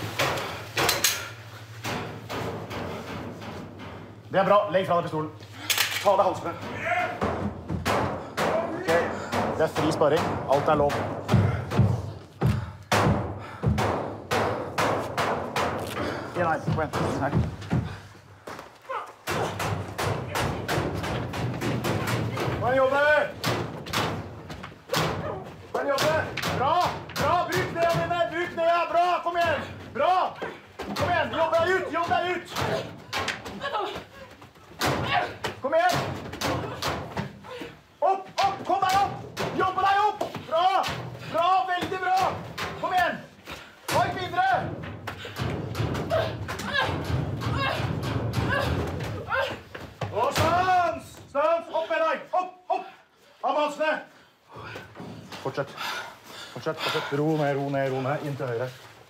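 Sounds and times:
shouts and grunts of effort: 0:06.6 - 0:07.4, 0:24.9 - 0:45.4, 0:46.0 - 0:55.0
thuds of blows against wall: 0:06.6 - 0:28.6, 0:29.4 - 0:37.7, 0:38.3 - 0:51.2.

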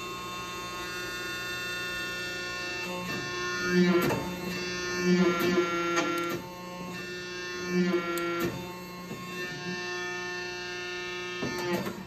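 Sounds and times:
hydraulic power unit humming: 0:00.0 - 0:12.0.

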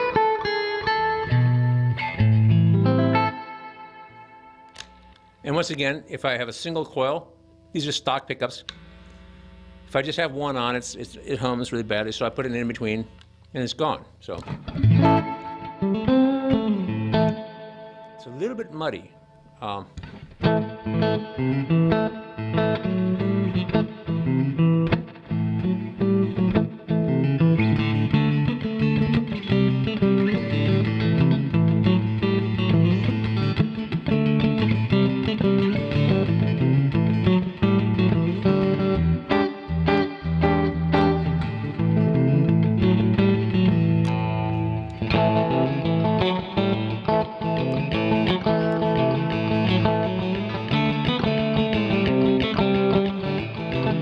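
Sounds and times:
electric guitar playing: 0:00.0 - 0:13.2, 0:14.3 - 0:54.0.

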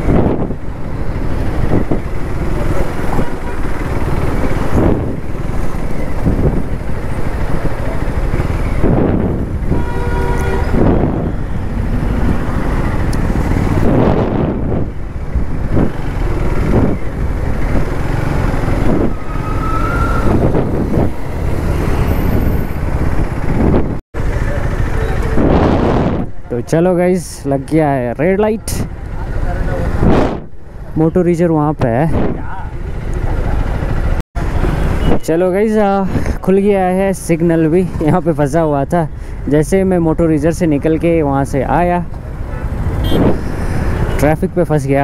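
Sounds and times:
wind buffeting microphone: 0:00.0 - 0:24.0, 0:25.2 - 0:26.5, 0:29.8 - 0:30.6
motorcycle engine running: 0:00.3 - 0:19.2, 0:20.4 - 0:26.4
vehicle horn: 0:09.7 - 0:10.9, 0:42.5 - 0:43.4.

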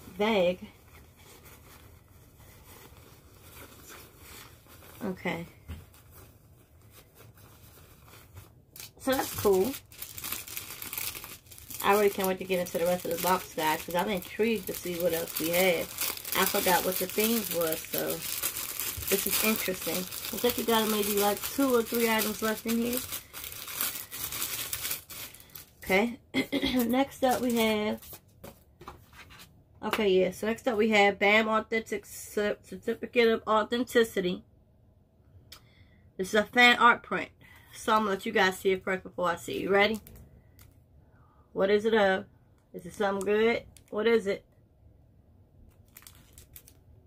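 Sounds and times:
packaging crinkling: 0:05.9 - 0:25.9, 0:26.8 - 0:28.2, 0:45.7 - 0:46.8.

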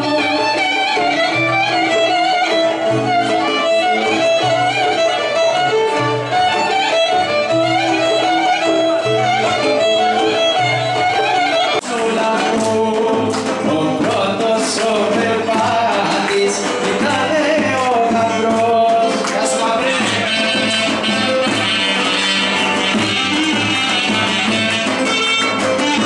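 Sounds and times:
plucked oud: 0:00.0 - 0:26.0
violin melody: 0:00.0 - 0:26.0.

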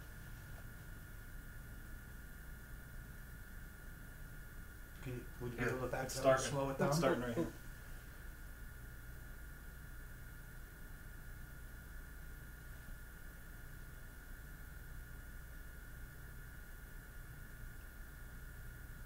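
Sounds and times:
low hum and hiss: 0:00.0 - 0:19.0.

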